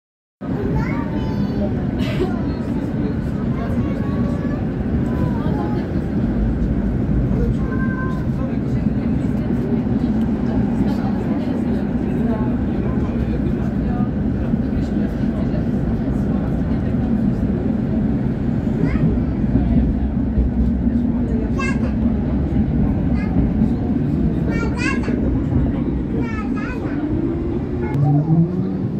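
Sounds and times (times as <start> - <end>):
tram rumbling on rails: 0.4 - 28.9
indistinct voices: 0.5 - 28.9.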